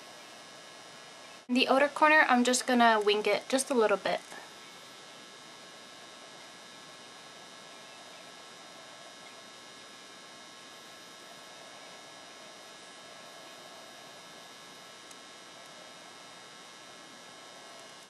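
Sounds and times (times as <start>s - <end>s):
faint electrical hum: 0.0s - 18.0s
steady low hiss: 0.0s - 18.0s.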